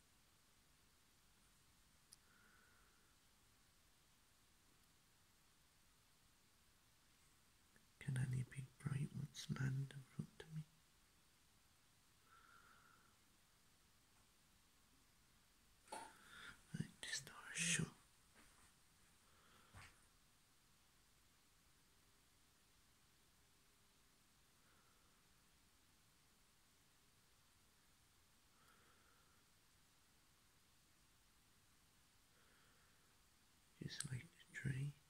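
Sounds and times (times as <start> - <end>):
person whispering: 8.0 - 10.7, 15.9 - 18.0, 33.8 - 35.0.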